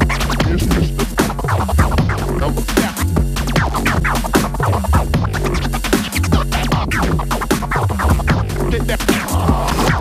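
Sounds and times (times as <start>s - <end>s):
electronic hip-hop beat: 0.0s - 10.0s
vinyl record scratching: 0.0s - 10.0s.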